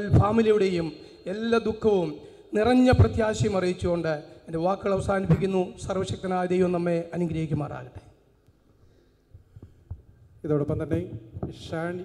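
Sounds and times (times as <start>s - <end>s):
man speaking: 0.0s - 8.1s, 10.4s - 12.0s.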